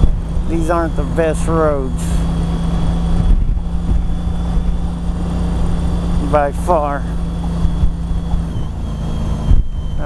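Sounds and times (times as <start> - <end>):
motorcycle engine running: 0.0 - 10.0
wind and road noise: 0.0 - 10.0.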